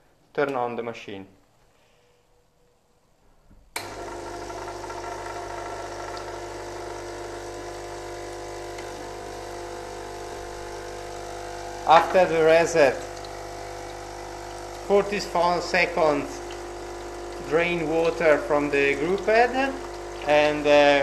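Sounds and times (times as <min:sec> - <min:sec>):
espresso machine pump humming: 0:03.8 - 0:21.0.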